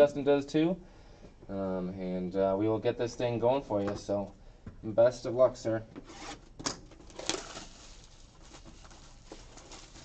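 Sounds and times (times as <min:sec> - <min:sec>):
plastic wrap crinkling and tearing: 0:07.0 - 0:10.0.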